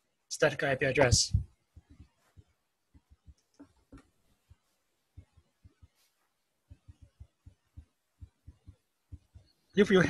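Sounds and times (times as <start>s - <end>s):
soft low thumps: 1.0s - 9.7s.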